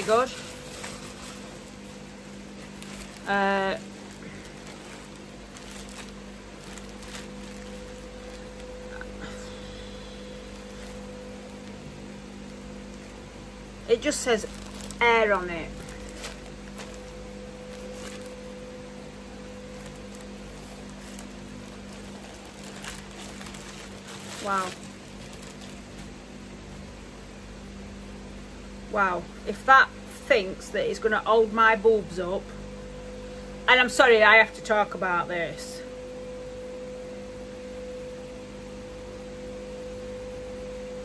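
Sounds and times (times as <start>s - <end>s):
plastic packaging rustling: 0.0s - 9.3s, 10.2s - 12.7s, 13.9s - 18.8s, 19.4s - 26.9s
steady low hum: 0.0s - 41.0s.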